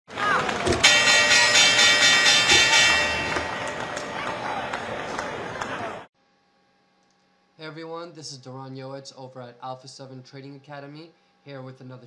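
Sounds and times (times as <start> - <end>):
shimmering bell-like chord: 0.8 - 5.0.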